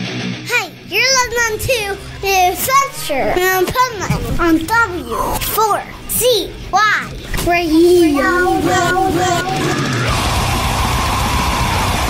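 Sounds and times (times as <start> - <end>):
child singing: 0.9 - 10.0.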